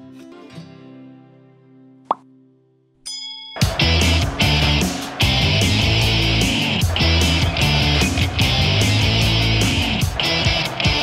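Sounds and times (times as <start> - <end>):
sustained background music: 3.6 - 11.0.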